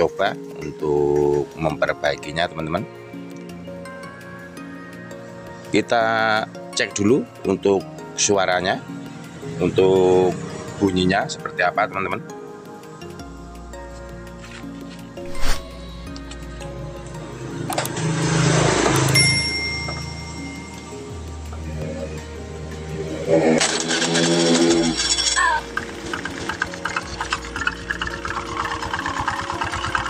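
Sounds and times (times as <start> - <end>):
background music: 0.0 - 30.0
belt and pulleys knocking rattle: 23.6 - 30.0
scooter engine running: 23.6 - 30.0.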